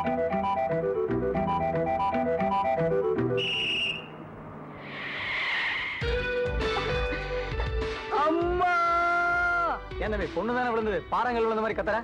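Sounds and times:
film music: 0.0 - 4.0, 6.0 - 11.8
shrill whistle blast: 3.4 - 4.2.

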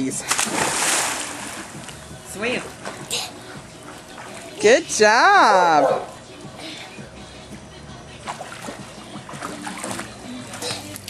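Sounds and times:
faint music: 0.0 - 11.0
child splashing in pool water: 0.3 - 1.8, 8.3 - 11.0.

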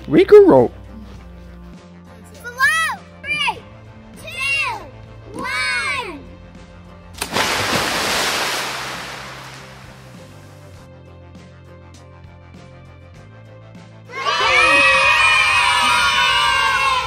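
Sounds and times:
background music: 0.0 - 17.0
doll splashing into pool: 7.2 - 10.4
girls shouting: 14.1 - 17.0.

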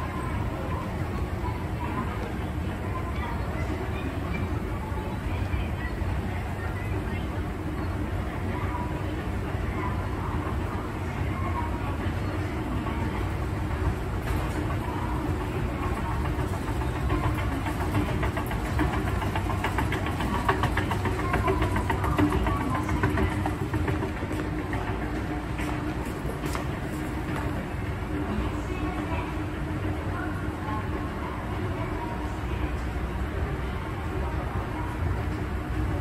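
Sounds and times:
conveyor machine hum: 0.0 - 36.0
clatter of conveyor steps: 12.4 - 30.1.

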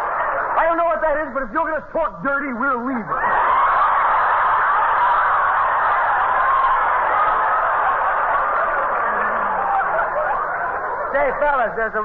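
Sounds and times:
audience laughing on old radio: 3.1 - 12.0.

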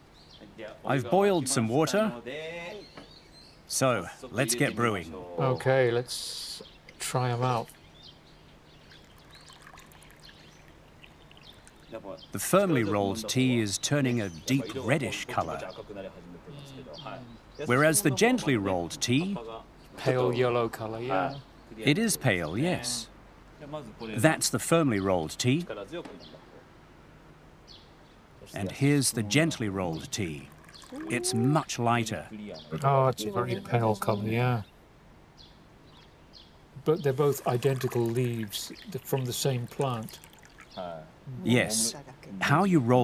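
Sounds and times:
faint bird chirps: 2.5 - 20.1, 27.7 - 34.8, 35.4 - 41.7
water pouring from kettle: 9.0 - 12.0, 30.4 - 31.4, 37.2 - 40.8.

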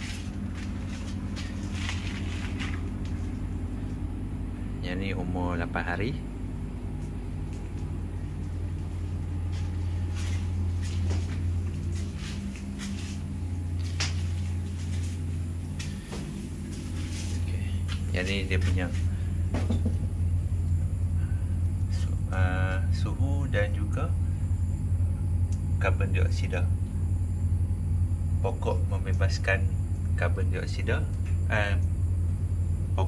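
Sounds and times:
air conditioner humming: 0.0 - 33.0.

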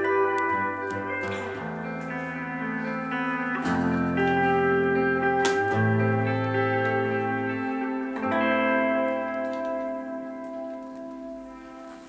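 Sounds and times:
guitars strumming chords: 0.0 - 12.0.

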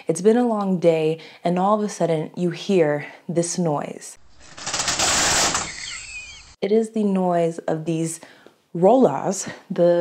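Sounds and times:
roller shutter slats rattling: 4.3 - 6.4.

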